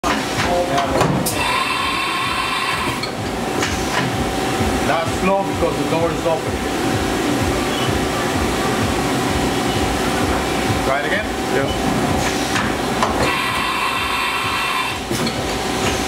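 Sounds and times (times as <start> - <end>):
high machine whine: 0.0 - 16.0
steady machine noise: 0.0 - 16.0.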